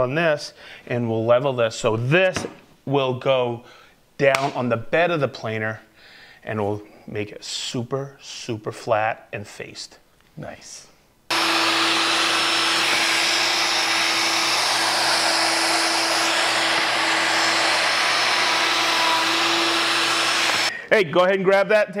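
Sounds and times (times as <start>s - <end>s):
router cutting wood: 11.3s - 20.7s
dust extractor drawing air: 11.3s - 20.8s.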